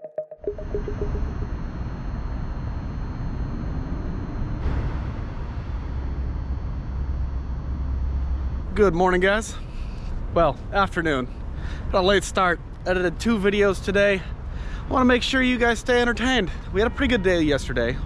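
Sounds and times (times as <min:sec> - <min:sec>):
synthesizer jingle: 0:00.0 - 0:02.0
city traffic rumble: 0:03.6 - 0:18.0.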